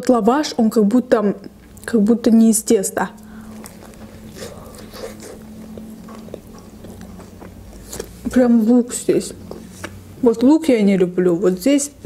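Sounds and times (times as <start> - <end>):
steady low hum: 0.0 - 12.0
chewing with mouth clicks: 3.2 - 8.3.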